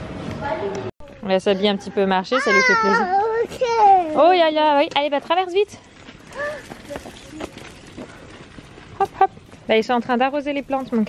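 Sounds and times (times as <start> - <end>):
footsteps on asphalt: 3.0 - 11.0.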